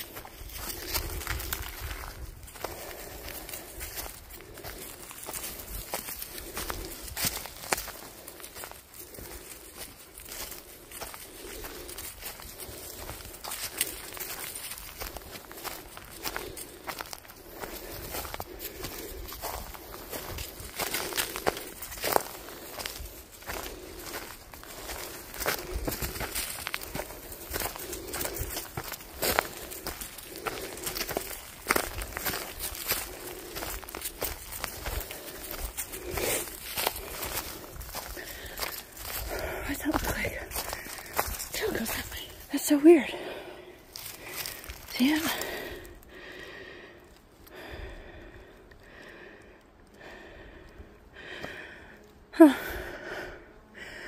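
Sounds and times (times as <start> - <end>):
footsteps on leafy dirt trail: 0.0 - 54.0.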